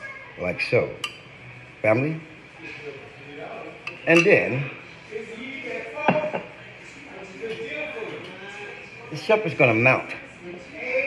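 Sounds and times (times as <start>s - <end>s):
faint murmur of voices: 0.0s - 11.0s
kitchenware knocking: 6.0s - 6.5s.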